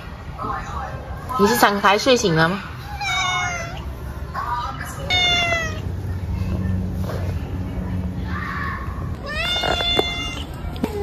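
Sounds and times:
cat meowing: 0:02.9 - 0:03.9, 0:05.0 - 0:05.9, 0:09.2 - 0:11.0.

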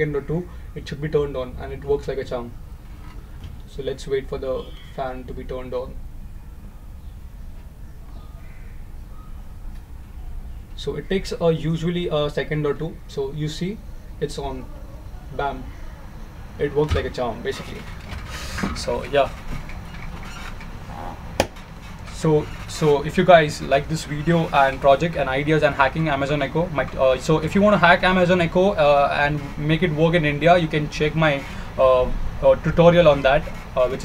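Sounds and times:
low room rumble: 0:00.0 - 0:34.0
low steady hum: 0:00.0 - 0:34.0.

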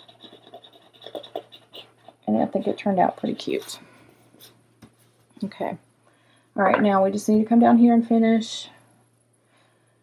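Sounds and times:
metal tweezers scratching paper: 0:00.0 - 0:02.2.

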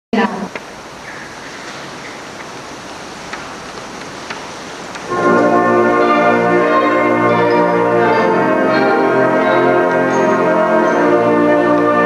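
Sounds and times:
recording hiss: 0:00.1 - 0:12.0.

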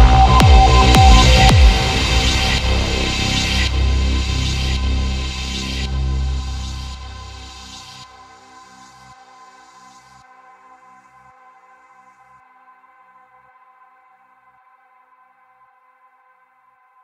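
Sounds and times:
electronic synth pad: 0:00.0 - 0:09.1.

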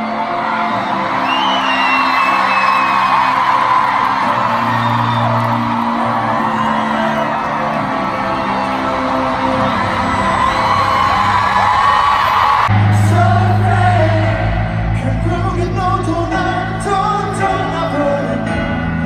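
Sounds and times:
fans screaming and whooping: 0:00.0 - 0:14.0
band backing music: 0:00.0 - 0:19.0
amplified singing: 0:05.4 - 0:19.0.

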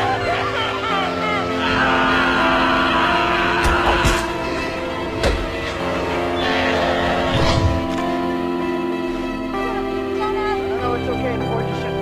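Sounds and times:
woman screaming: 0:00.0 - 0:04.4
film score of held chords: 0:00.0 - 0:12.0.

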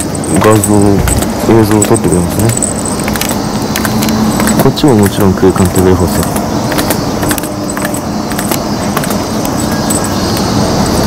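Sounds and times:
small items clicking and jingling: 0:00.0 - 0:11.0
street traffic hum: 0:00.0 - 0:11.0.

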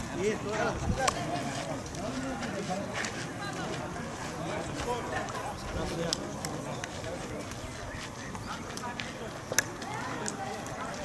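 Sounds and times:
distant voices talking: 0:00.0 - 0:11.0.

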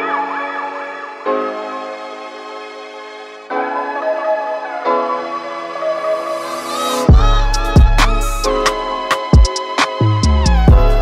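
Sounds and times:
synth chords with sliding lead: 0:00.2 - 0:11.0.

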